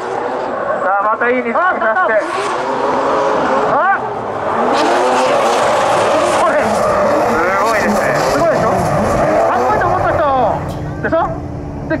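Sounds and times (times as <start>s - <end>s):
tyres sliding on asphalt: 0.0s - 10.7s
drift car engines at high revs: 0.0s - 12.0s.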